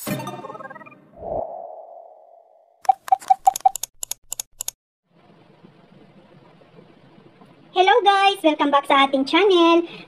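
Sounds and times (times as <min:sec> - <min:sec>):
sharp clicks: 0:02.8 - 0:04.8.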